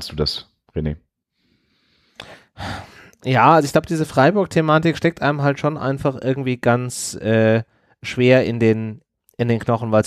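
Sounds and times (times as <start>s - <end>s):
person breathing in: 1.4s - 3.2s.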